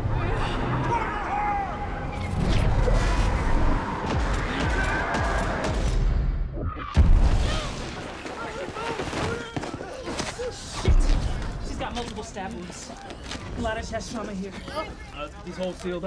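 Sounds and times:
film score music: 0:00.0 - 0:07.2
booms: 0:04.1 - 0:08.0.

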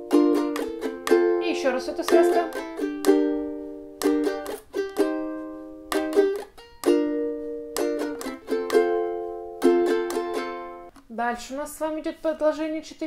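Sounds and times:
ukulele strumming chords: 0:00.0 - 0:11.1.

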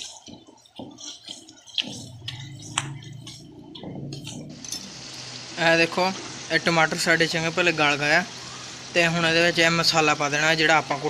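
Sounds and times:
wooden spatula scraping a pan: 0:00.0 - 0:04.4
wet squelches: 0:00.0 - 0:04.6
low steady hum: 0:00.0 - 0:09.7.

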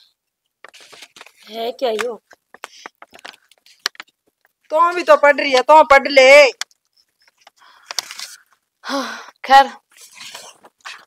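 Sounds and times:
paper rustling: 0:00.6 - 0:05.7, 0:06.8 - 0:08.6.

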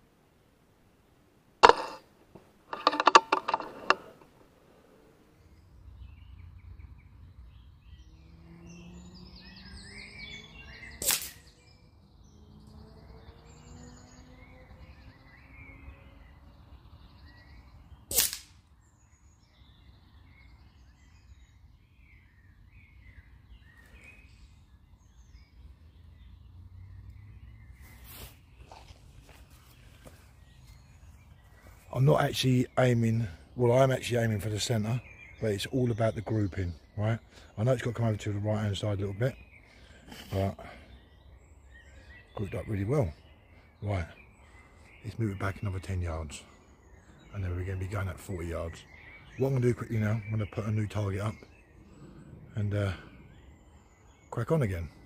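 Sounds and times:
birds chirping: 0:00.0 - 0:55.0
air rifle firing crack: 0:11.0 - 0:11.4, 0:18.1 - 0:18.6
loud clicks: 0:11.0 - 0:11.4, 0:18.1 - 0:18.6.

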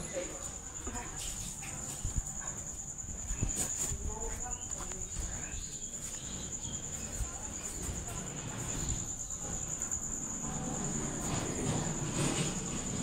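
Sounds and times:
cricket trilling: 0:00.0 - 0:13.0.

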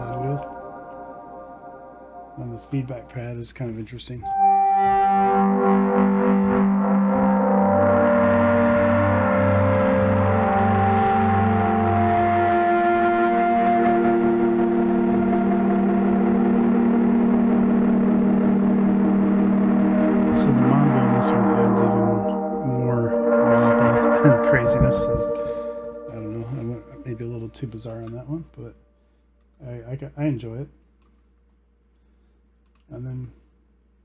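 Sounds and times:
dreamy synth pad chords: 0:00.0 - 0:28.6
low pulsing note: 0:00.0 - 0:28.6.

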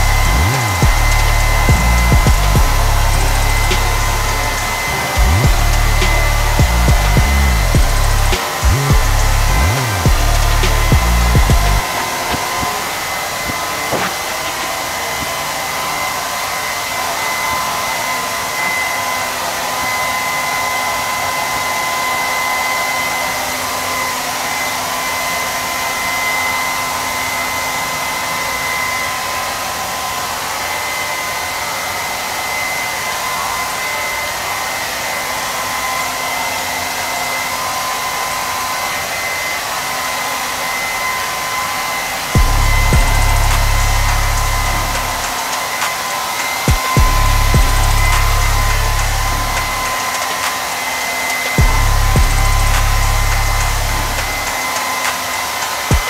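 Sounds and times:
low rumble: 0:00.0 - 0:11.8, 0:42.4 - 0:45.3, 0:47.0 - 0:49.9, 0:51.6 - 0:54.5
hair dryer running: 0:00.0 - 0:56.0.

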